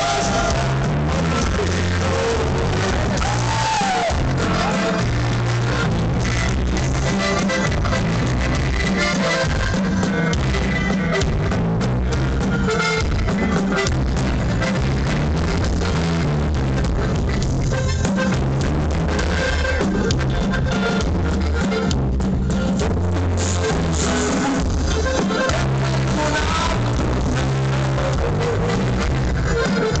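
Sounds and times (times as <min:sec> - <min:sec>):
live band playing: 0:00.0 - 0:30.0.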